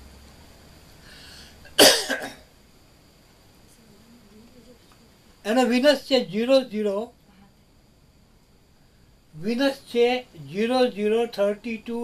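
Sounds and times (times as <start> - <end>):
breath intake: 1.0 - 1.7
man coughing: 1.7 - 2.5.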